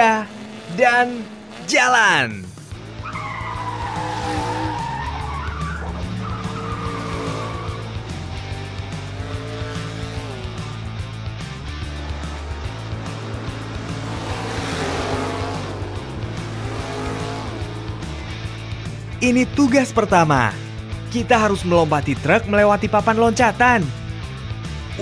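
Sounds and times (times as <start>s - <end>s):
cartoon engines revving: 0.0s - 21.1s
background music with bass line: 0.8s - 25.0s
tyres squealing: 2.8s - 19.8s.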